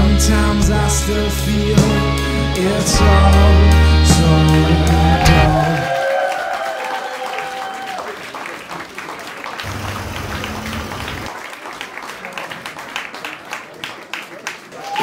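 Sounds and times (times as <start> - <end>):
held notes of a song: 0.0 - 5.9
crowd applauding: 3.8 - 15.0.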